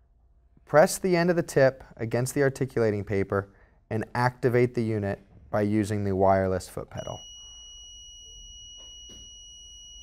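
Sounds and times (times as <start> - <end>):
high-pitched laser beep: 7.0 - 10.0.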